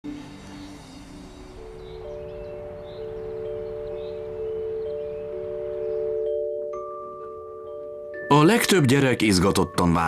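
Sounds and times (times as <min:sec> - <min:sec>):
chime-like background music: 0:00.1 - 0:10.0.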